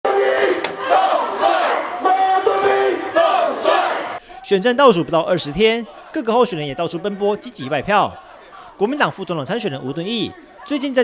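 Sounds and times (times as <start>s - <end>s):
crowd chanting in unison: 0.0s - 4.3s, 5.4s - 10.7s.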